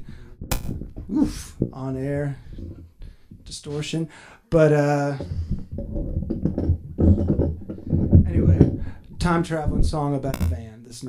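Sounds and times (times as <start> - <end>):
man talking: 1.1 - 2.5, 3.4 - 5.4, 8.2 - 11.0
small knocks: 5.2 - 8.9.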